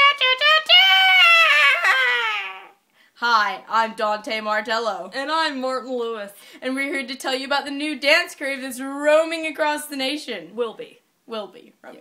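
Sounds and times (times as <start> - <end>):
girl singing high note: 0.0 - 2.7.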